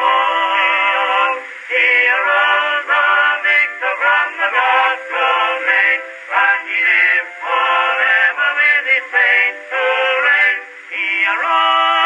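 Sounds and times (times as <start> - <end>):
male vocal quartet singing a hymn: 0.0 - 12.0.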